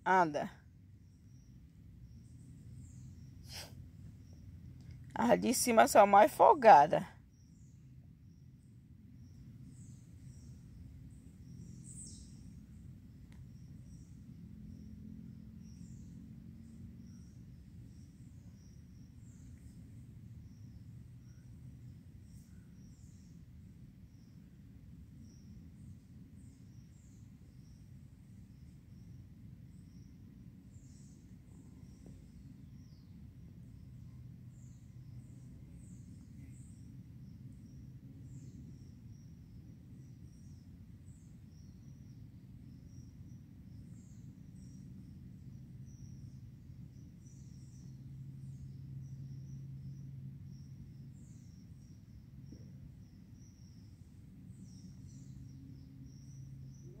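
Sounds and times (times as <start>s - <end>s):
low steady rumble and hum: 0.0s - 57.0s.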